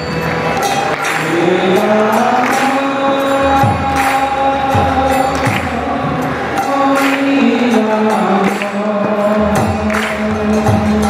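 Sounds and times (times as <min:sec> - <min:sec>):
harmonium: 0:00.0 - 0:11.0
devotional chant singing: 0:00.9 - 0:11.0.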